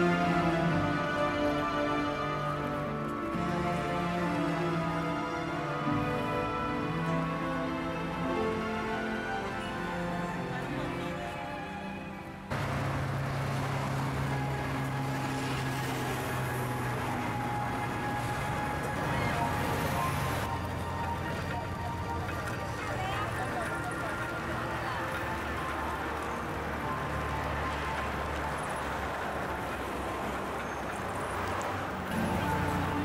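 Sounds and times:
highway traffic noise: 0.0s - 33.0s
vehicle engine humming: 0.0s - 33.0s.

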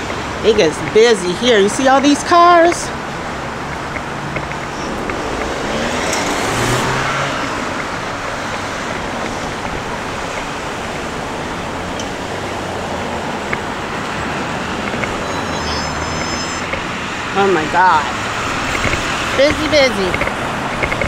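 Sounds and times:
cars driving past: 0.0s - 21.0s.

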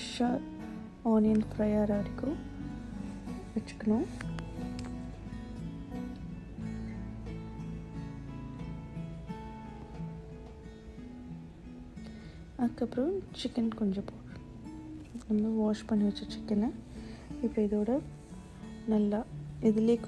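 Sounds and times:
plucked acoustic guitar: 0.0s - 20.0s.

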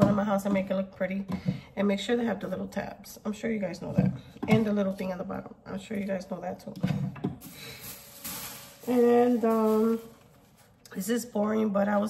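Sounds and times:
plastic shopping bag rustling: 7.4s - 10.8s.

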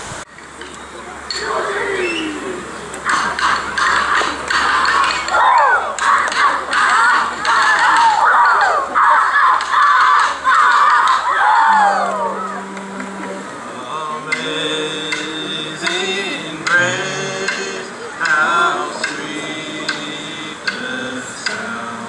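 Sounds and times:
dancers calling and shouting: 1.1s - 22.0s.

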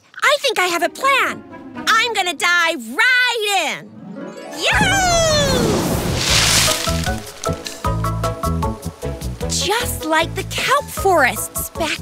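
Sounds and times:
rustling crash into leaves: 4.8s - 8.0s.

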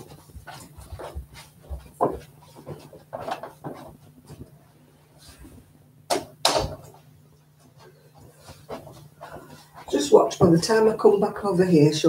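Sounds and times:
knocks and thumps of movement: 0.0s - 4.6s, 5.2s - 10.6s.

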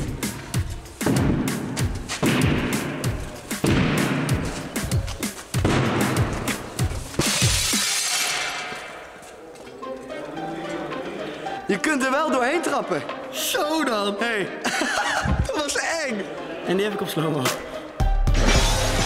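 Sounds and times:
background music with a beat: 0.0s - 9.1s, 17.3s - 19.0s
window glass shattering: 7.2s - 8.8s.

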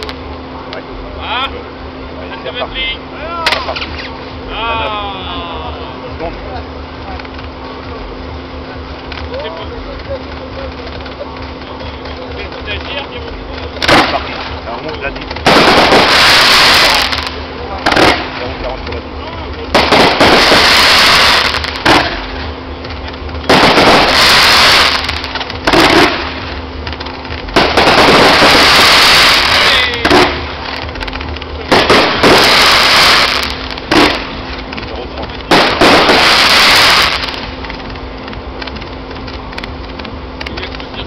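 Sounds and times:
fireworks crackling: 0.0s - 41.0s
sharp firework bangs: 12.4s - 18.8s, 19.7s - 22.7s, 23.3s - 38.0s.

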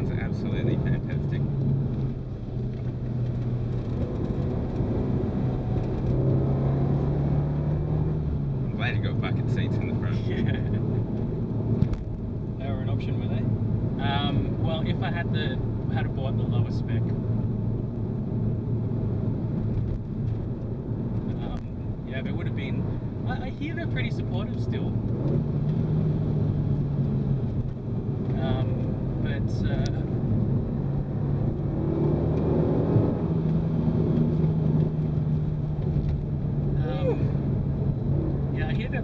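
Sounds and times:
car engine droning: 0.0s - 39.0s
tyre and road rumble: 0.0s - 39.0s.

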